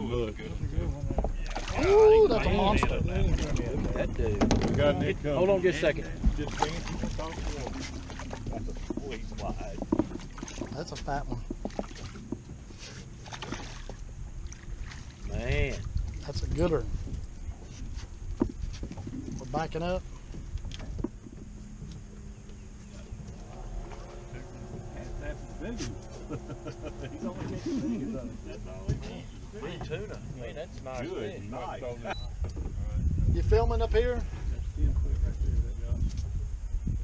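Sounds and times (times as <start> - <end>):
men talking indistinctly: 0.0 - 10.0, 10.6 - 11.5, 15.2 - 17.8, 19.3 - 20.2, 22.8 - 36.3
wind rumbling on microphone: 0.0 - 37.0
faint water splashes: 1.0 - 32.1.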